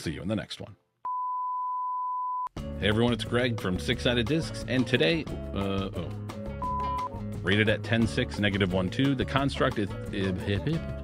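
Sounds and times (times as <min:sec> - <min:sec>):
steady test-tone beep: 0:01.1 - 0:02.5, 0:06.6 - 0:07.2
music: 0:02.5 - 0:11.0.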